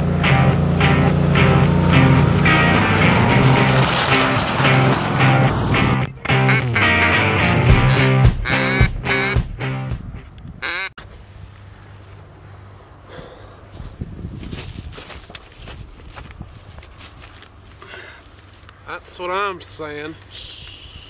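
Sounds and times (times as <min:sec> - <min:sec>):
background music: 0:00.2 - 0:10.1
duck call quacks: 0:06.3 - 0:09.5, 0:10.6 - 0:10.9.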